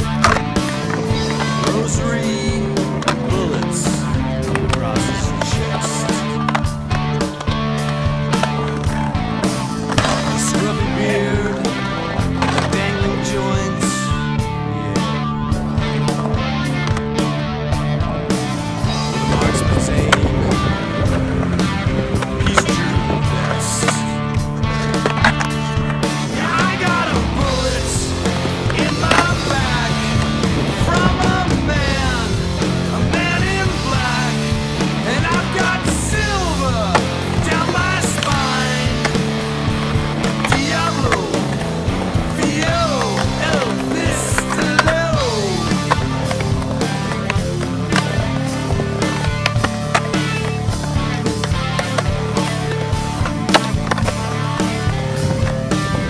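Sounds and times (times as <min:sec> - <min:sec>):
loud rock music: 0:00.0 - 0:56.0
skateboard clacks: 0:00.0 - 0:56.0
skateboard wheels rolling on concrete: 0:00.0 - 0:56.0.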